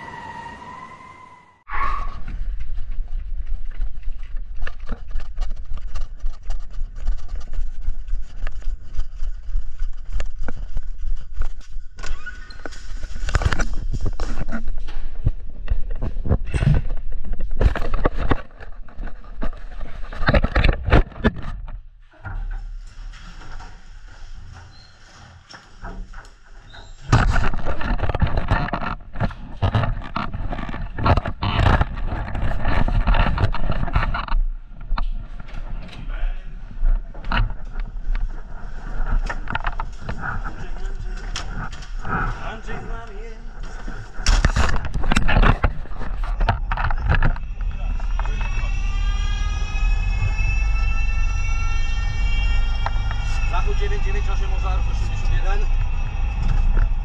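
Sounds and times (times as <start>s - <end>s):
siren winding up: 0.0s - 1.9s
gear knocks and clatter: 2.2s - 36.1s, 36.7s - 48.8s
indistinct voices: 46.1s - 57.0s
deep engine rumble: 47.4s - 57.0s.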